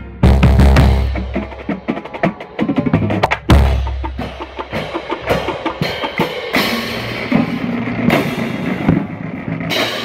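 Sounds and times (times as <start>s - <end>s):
marching band playing: 0.0s - 10.0s.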